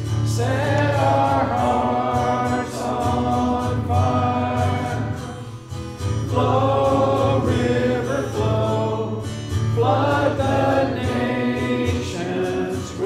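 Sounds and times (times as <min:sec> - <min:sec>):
congregation singing a hymn: 0:00.2 - 0:13.0.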